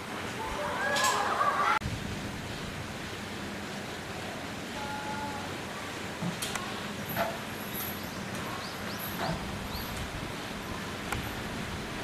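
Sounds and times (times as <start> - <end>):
outdoor background hiss: 0.0 - 12.0.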